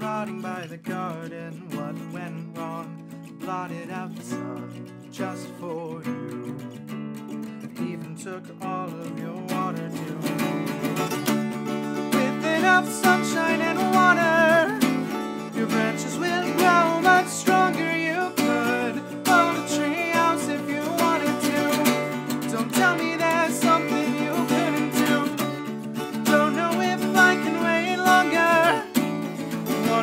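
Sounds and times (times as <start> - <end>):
acoustic guitar strumming: 0.0 - 30.0
man singing: 0.0 - 30.0.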